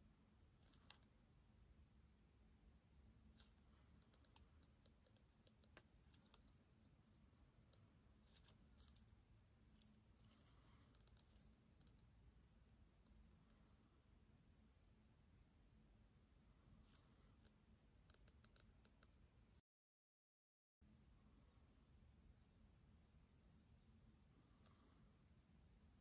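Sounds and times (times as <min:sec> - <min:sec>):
faint low hum: 0:00.0 - 0:19.6, 0:20.8 - 0:26.0
faint small clicks: 0:00.6 - 0:01.1, 0:03.4 - 0:07.0, 0:09.7 - 0:12.1, 0:16.8 - 0:19.2, 0:24.4 - 0:25.1.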